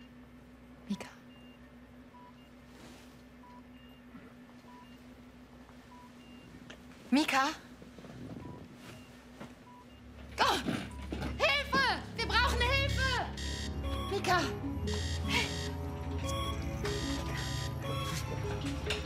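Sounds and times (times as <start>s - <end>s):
patient monitor beeps: 0.9s - 2.6s, 3.4s - 5.0s, 5.9s - 6.5s, 8.4s - 10.2s, 10.9s - 11.6s, 12.2s - 19.0s
tense dramatic music: 11.8s - 19.0s
woman crying out in distress: 15.2s - 15.8s.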